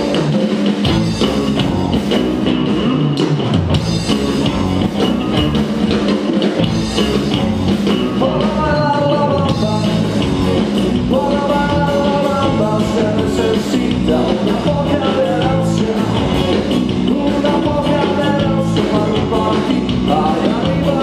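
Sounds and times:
bass guitar: 0.0 - 21.0
drum kit: 0.0 - 21.0
electric guitars: 0.0 - 21.0
held melodic guitar line: 0.0 - 21.0.

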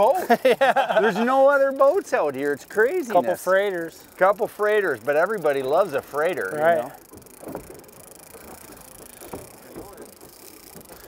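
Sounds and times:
wind: 0.0 - 11.0
faint voices: 8.4 - 11.0.

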